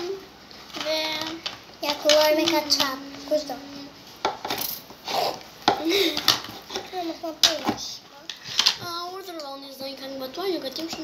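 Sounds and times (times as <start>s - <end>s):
children's voices: 0.0s - 4.0s, 5.8s - 11.0s.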